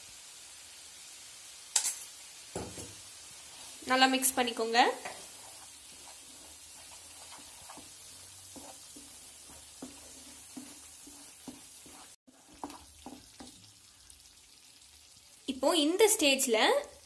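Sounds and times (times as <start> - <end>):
masala sizzling in a frying pan: 0.0 - 17.0
wooden spatula scraping a pan: 2.6 - 13.7.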